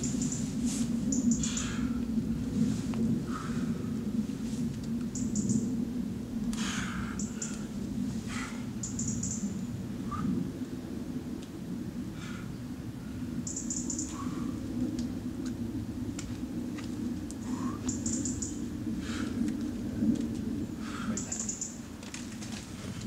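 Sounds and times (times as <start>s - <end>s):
low background rumble: 0.0s - 23.0s
birds chirping: 8.8s - 9.7s, 13.4s - 14.5s, 17.4s - 18.7s, 21.0s - 21.8s.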